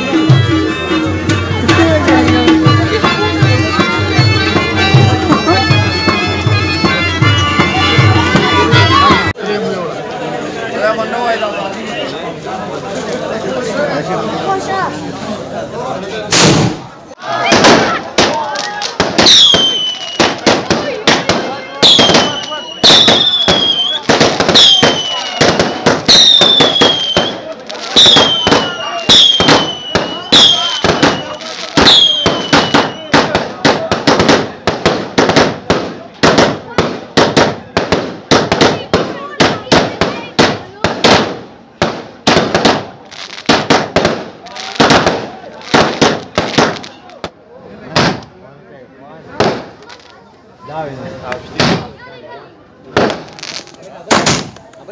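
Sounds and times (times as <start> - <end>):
fireworks bangs and crackles: 1.8 - 9.3, 16.2 - 48.4, 49.2 - 54.9
falling firework whistle: 19.2 - 20.5, 21.8 - 33.4.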